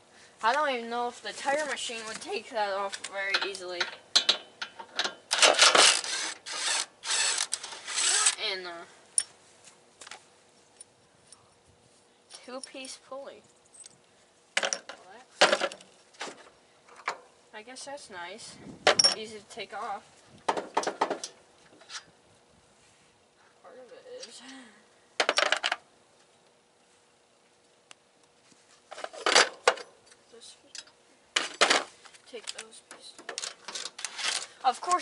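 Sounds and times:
metal tools clinking and rattling: 2.9s - 6.0s, 19.0s - 19.3s.

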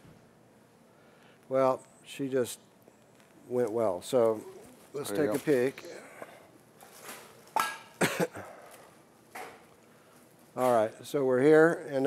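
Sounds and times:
person coughing: 8.0s - 8.6s.

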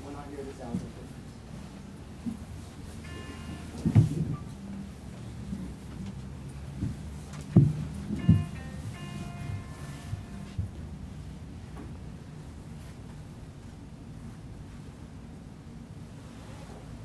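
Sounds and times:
steady pitched notes: 3.0s - 7.0s, 7.7s - 11.2s
dull low handling thumps: 6.7s - 8.8s.

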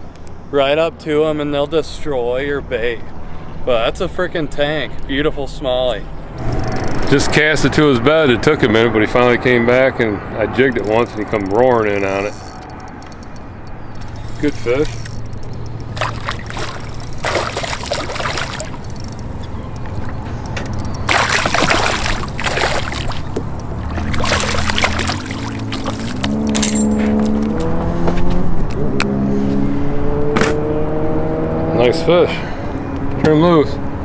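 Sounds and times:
fish splashing at surface: 14.8s - 19.3s, 20.9s - 26.5s.

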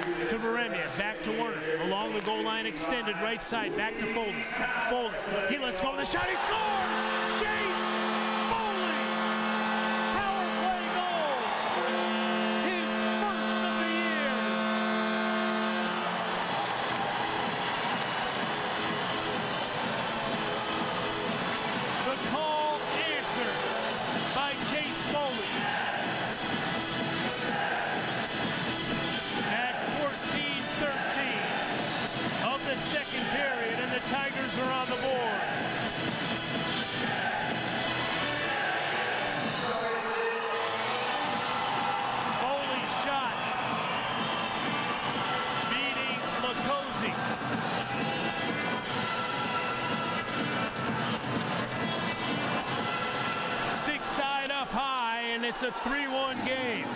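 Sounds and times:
loud crowd noise: 0.0s - 56.9s
music: 0.0s - 56.9s
arena goal horn blasts: 6.1s - 20.1s, 29.0s - 31.8s, 38.9s - 47.2s.

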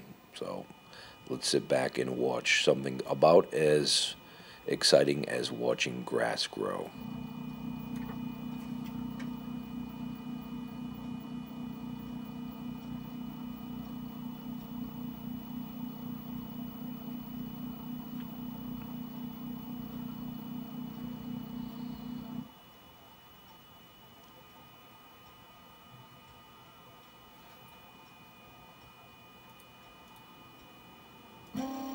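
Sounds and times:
stepper motor hum: 6.6s - 22.5s, 31.5s - 31.9s.

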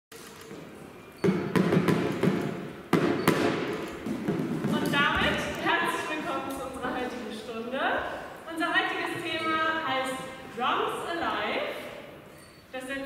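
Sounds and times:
drumsticks thudding on exercise ball: 1.2s - 5.3s.

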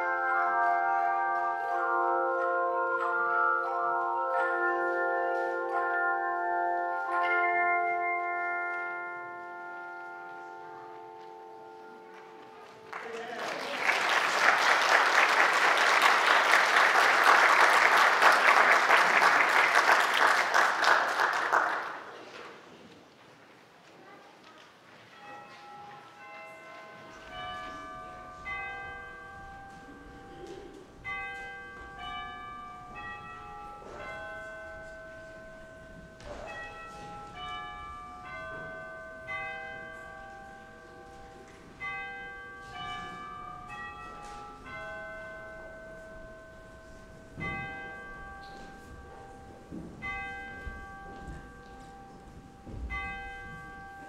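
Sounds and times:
bells ringing slow melody: 0.0s - 22.2s, 25.1s - 54.0s.

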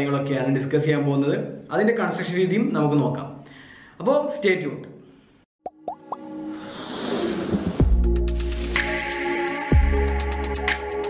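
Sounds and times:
rising plop sound effects: 5.6s - 6.3s.

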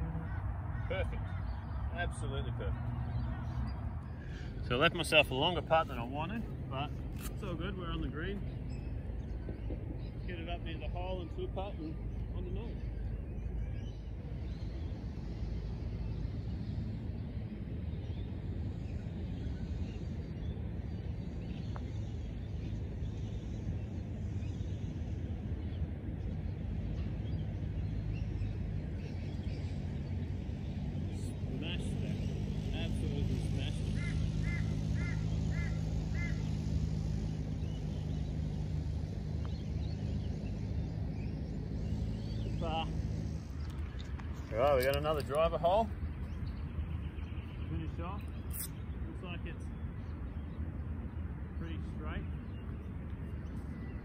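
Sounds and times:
bird chirping: 0.0s - 54.0s
distant engine humming: 0.0s - 54.0s
steady low rumble: 0.0s - 54.0s.

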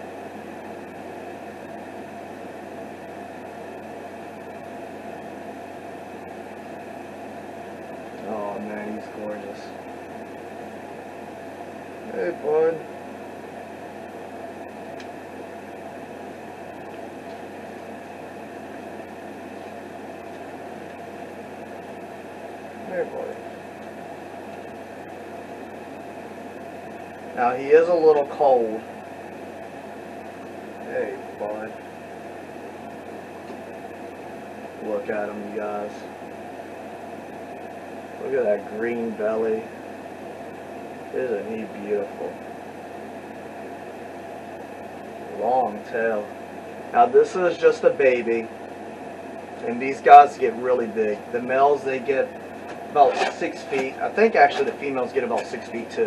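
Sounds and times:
room hiss with low hum: 0.0s - 56.0s.

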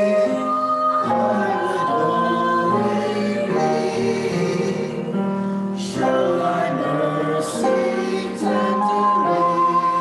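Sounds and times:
mixed choir singing in harmony: 0.0s - 10.0s.

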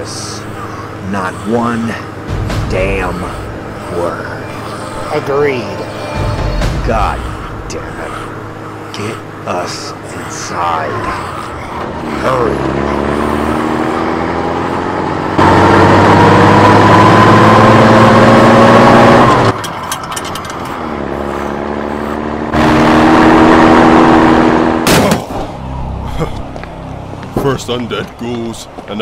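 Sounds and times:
engine accelerating: 0.0s - 29.0s
sharp bang: 2.2s - 4.9s.

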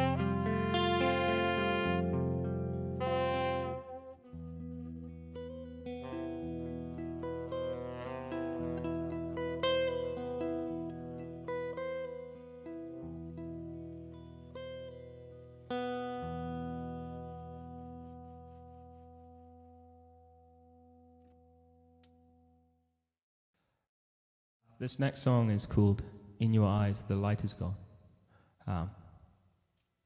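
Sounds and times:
jazz guitar plucked chords: 0.0s - 22.4s.

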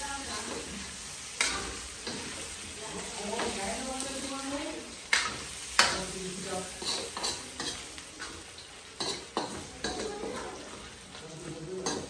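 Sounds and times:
chicken sizzling in a pan: 0.0s - 12.0s
spatula knocking and scraping pan: 6.7s - 8.4s, 9.0s - 10.8s.

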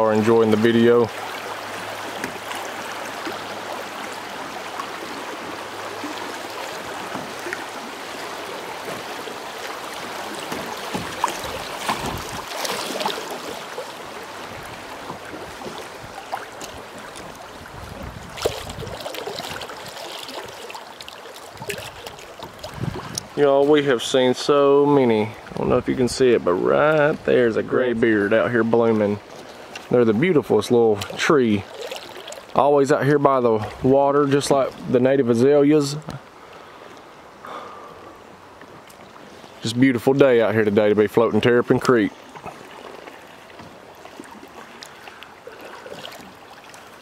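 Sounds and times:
creek water rushing: 0.0s - 47.0s.

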